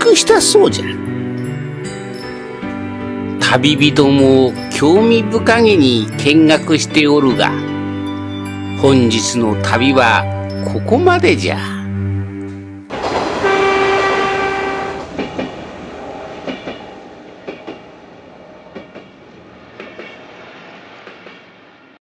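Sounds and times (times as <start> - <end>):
train wheels clicking over rail joints: 12.9 - 18.0, 18.7 - 21.7
train horn: 13.2 - 15.1.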